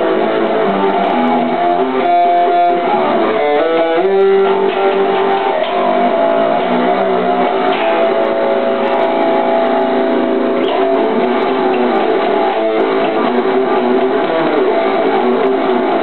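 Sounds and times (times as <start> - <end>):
electric guitar solo: 0.0 - 16.0.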